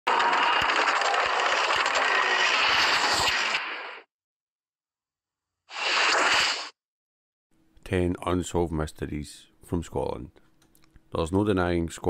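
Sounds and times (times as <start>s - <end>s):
glitchy crackling static: 0.1s - 4.1s.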